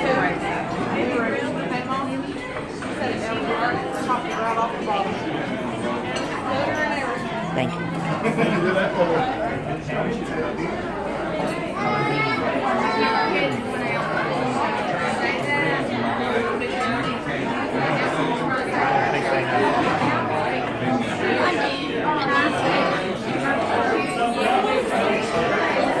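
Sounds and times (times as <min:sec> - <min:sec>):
overlapping chatter: 0:00.0 - 0:26.0.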